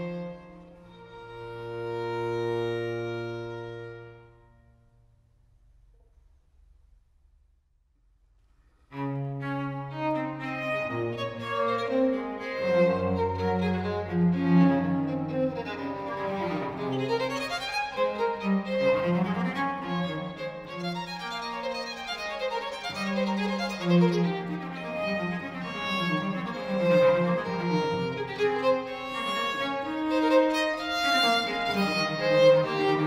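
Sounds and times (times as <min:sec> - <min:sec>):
violin and cello sustained chord: 0:00.0 - 0:04.8, 0:08.9 - 0:33.0.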